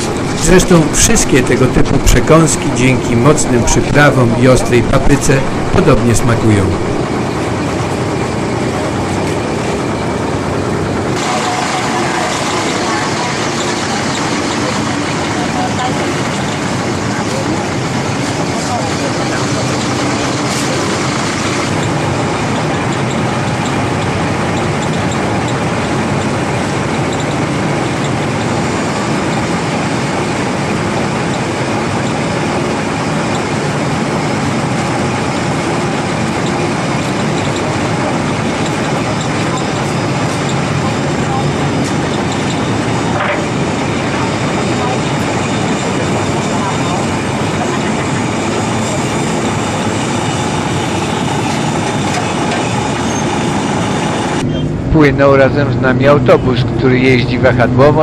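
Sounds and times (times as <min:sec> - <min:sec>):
ferry engine drone: 0:00.0 - 0:58.0.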